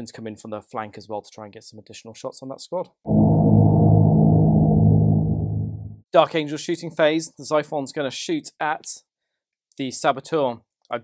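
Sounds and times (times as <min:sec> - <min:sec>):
deep low droning sting: 0:03.1 - 0:06.0.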